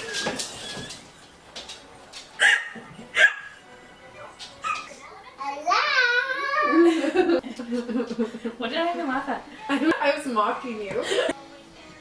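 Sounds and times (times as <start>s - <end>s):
child squealing: 5.8s - 6.9s.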